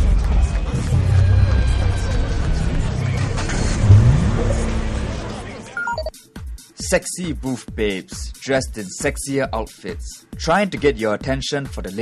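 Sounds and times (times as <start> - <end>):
news title music: 3.4 - 6.1
upward sweeping sound effect: 3.5 - 6.1.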